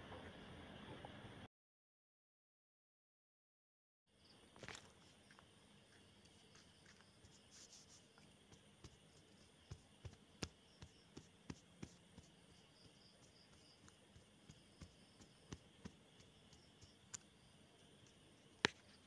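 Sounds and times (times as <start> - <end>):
faint clicks and taps: 4.6 - 19.0.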